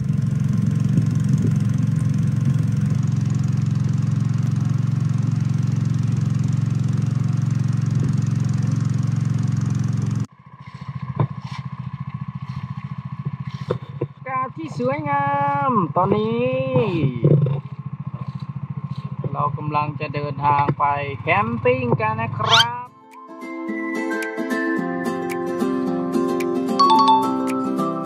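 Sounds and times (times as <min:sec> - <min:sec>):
boat motor running loudly: 0:00.0 - 0:14.3.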